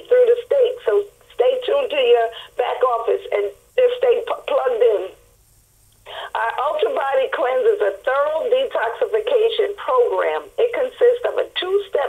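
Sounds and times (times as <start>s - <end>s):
person talking over telephone: 0.0s - 5.2s, 6.3s - 12.0s.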